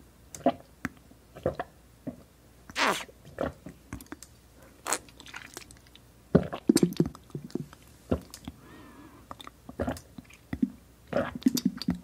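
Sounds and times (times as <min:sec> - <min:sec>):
wet sipping clicks and gulps: 0:09.3 - 0:12.0.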